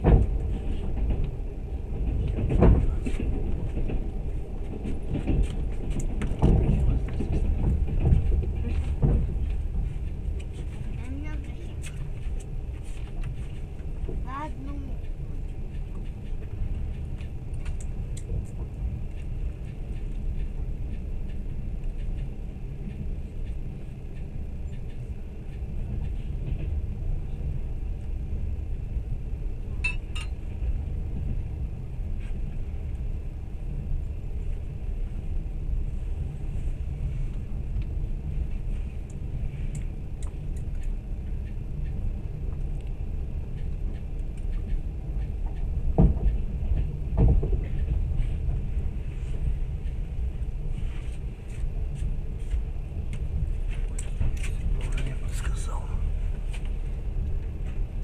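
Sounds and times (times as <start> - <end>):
train rumble inside carriage: 0.0 - 58.0.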